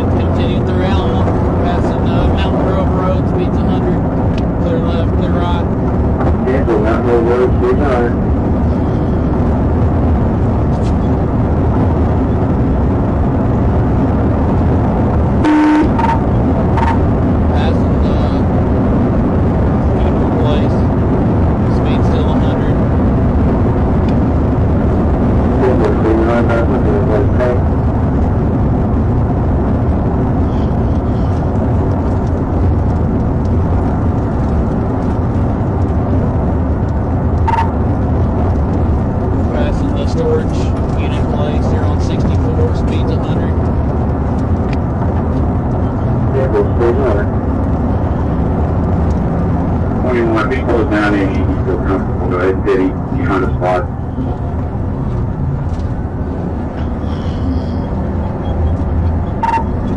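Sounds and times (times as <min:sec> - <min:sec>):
car engine: 0:00.0 - 0:59.9
road and wind noise: 0:00.0 - 0:59.9
short beep: 0:37.5 - 0:37.7, 0:59.4 - 0:59.8.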